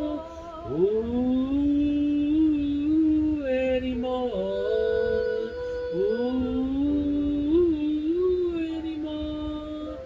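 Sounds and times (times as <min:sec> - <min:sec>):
man singing held notes: 0:00.0 - 0:10.0.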